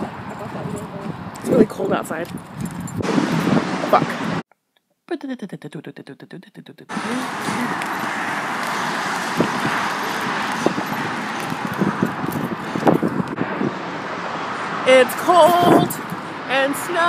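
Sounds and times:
highway traffic: 0.0 - 4.5, 6.9 - 17.0.

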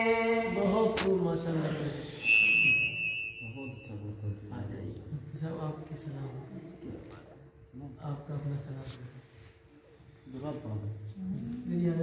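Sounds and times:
sung recitation: 0.0 - 1.9
high-pitched whistle-like tone: 2.1 - 4.4.

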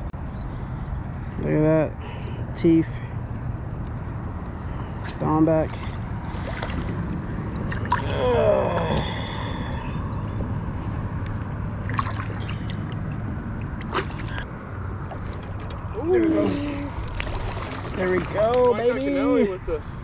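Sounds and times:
water splashing and sloshing: 5.0 - 9.8, 10.7 - 19.4.

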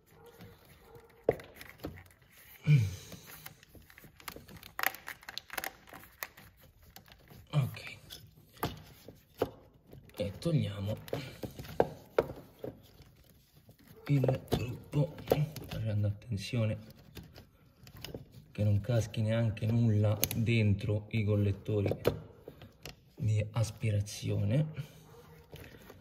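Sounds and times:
person muttering or grunting: 2.6 - 3.2
small clicks and knocks of hoses: 16.6 - 18.6, 21.6 - 23.2.

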